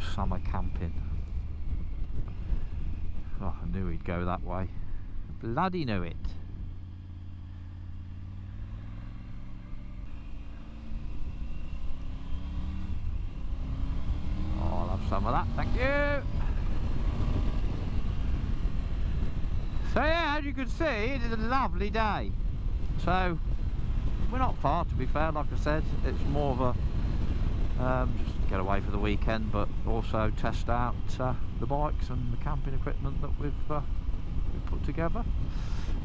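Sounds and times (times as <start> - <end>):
wind buffeting microphone: 0.0 - 5.5, 15.2 - 33.1
motorcycle engine drone: 0.0 - 36.0
road noise: 0.0 - 36.0.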